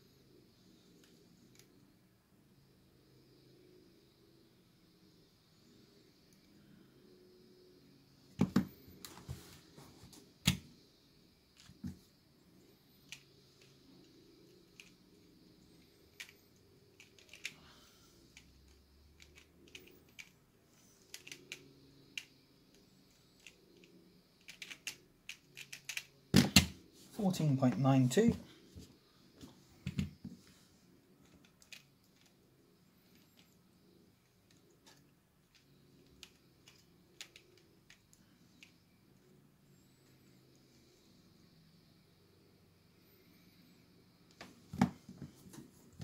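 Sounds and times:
plastic puzzle clicking: 17.0 - 17.6, 19.2 - 20.4, 21.1 - 22.8, 23.4 - 26.7, 31.4 - 32.4, 35.5 - 38.8.

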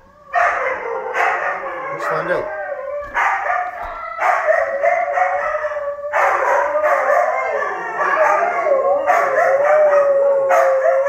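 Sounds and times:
dogs howling together: 0.0 - 11.0.

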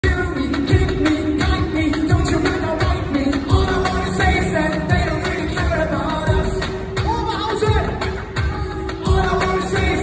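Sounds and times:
live eurodance music: 0.0 - 10.0
person singing: 0.0 - 10.0.

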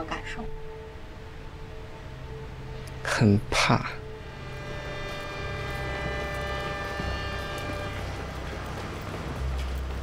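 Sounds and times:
train rumbling: 0.2 - 10.0
long held chord: 0.6 - 8.9.

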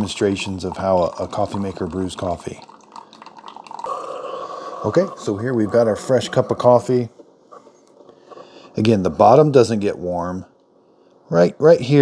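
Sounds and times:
coffee trickling into a mug: 0.0 - 7.0
coffee machine humming: 0.0 - 10.0.

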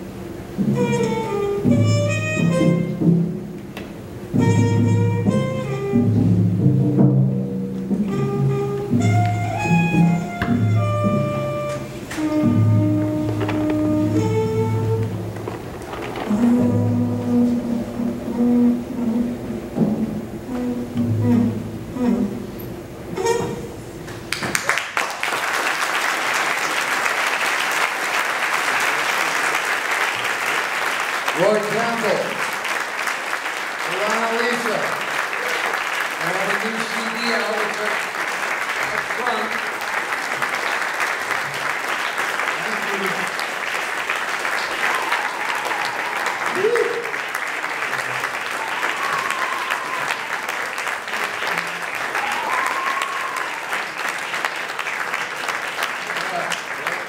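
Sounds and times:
audience applauding: 11.6 - 17.6, 24.2 - 57.0.

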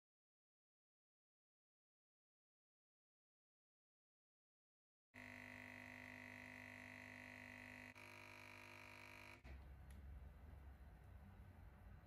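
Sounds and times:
espresso machine pump humming: 5.2 - 9.4.

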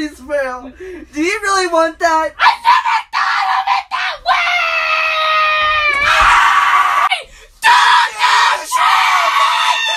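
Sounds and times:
person screaming: 2.4 - 9.9.

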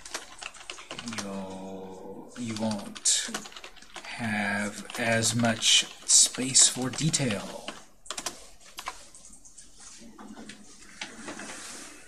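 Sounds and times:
keyboard keys clicking: 0.0 - 1.5, 2.5 - 4.0, 4.8 - 9.6.

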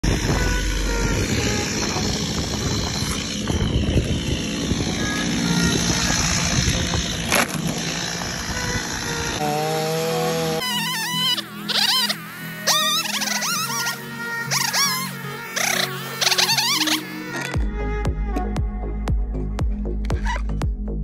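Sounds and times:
chainsaw engine running: 0.0 - 18.0
music with held notes: 0.0 - 21.0.

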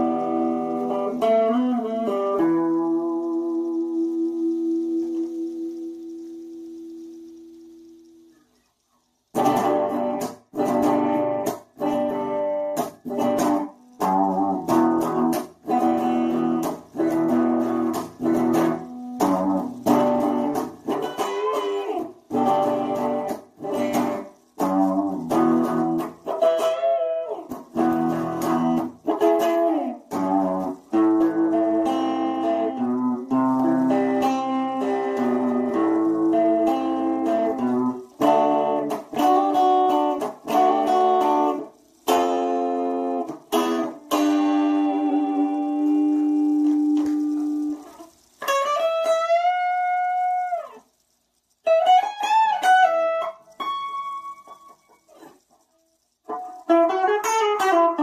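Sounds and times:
electric guitar chords: 0.0 - 8.4, 9.3 - 55.4.

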